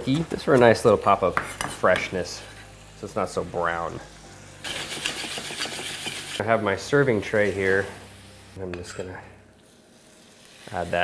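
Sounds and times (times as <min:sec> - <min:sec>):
meat sizzling in a skillet: 0:00.0 - 0:11.0
metal spoon scraping a skillet: 0:04.6 - 0:06.4.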